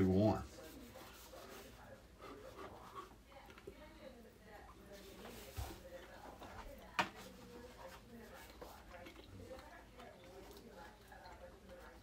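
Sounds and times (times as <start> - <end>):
chewing and mouth noises: 8.3 - 12.0.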